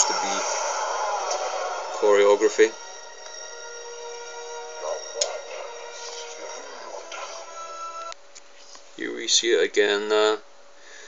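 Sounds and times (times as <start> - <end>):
film music with held chords: 0.0 - 8.2.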